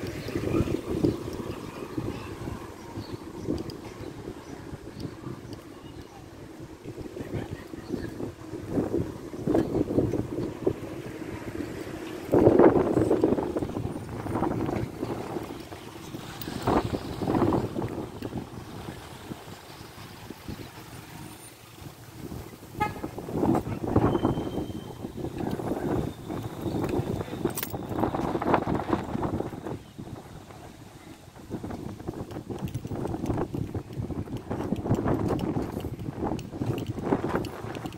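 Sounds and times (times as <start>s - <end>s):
car engines passing: 0.0s - 37.9s.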